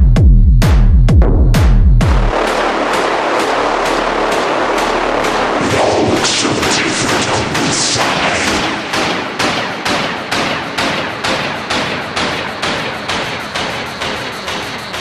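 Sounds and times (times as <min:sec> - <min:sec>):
sharp rapid electronic hits: 0:01.6 - 0:15.0
dense noise wash: 0:02.3 - 0:15.0.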